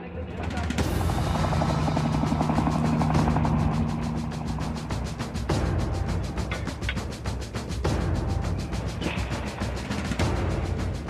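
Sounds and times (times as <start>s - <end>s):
helicopter rotor chop: 0.0s - 11.0s
music: 0.0s - 11.0s.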